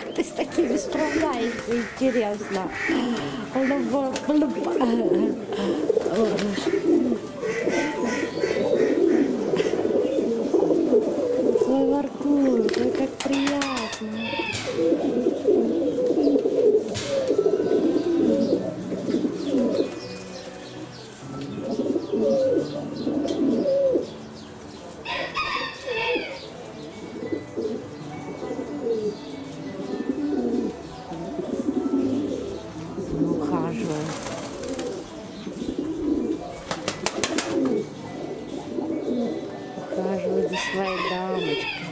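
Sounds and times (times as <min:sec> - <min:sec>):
pigeons cooing: 0:00.0 - 0:41.9.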